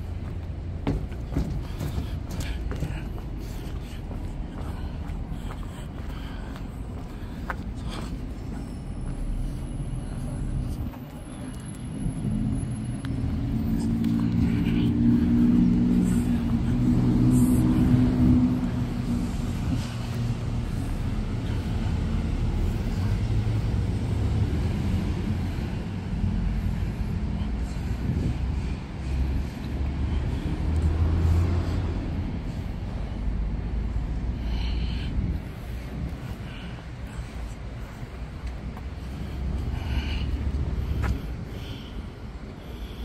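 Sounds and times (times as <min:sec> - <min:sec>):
vehicle engine rumbling: 0:00.0 - 0:43.0.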